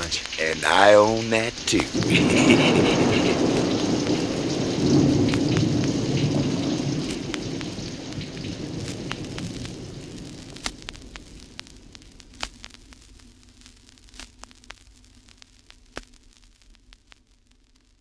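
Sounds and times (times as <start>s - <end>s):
rain and thunder: 0.0s - 12.4s
vinyl record clicks and pops: 0.0s - 18.0s.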